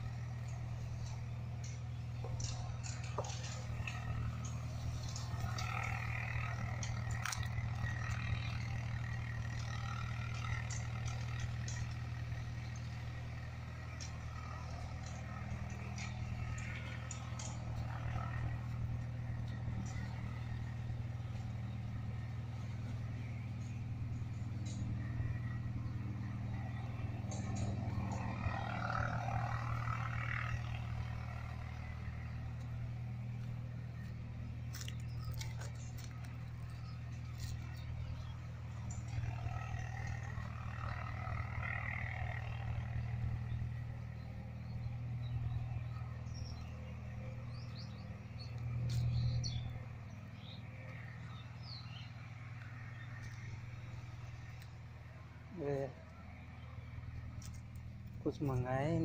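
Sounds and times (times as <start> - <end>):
low engine drone: 0.0 - 59.0
low motor hum: 0.0 - 59.0
faint clicks: 0.4 - 14.2
bird chirps: 43.4 - 53.4.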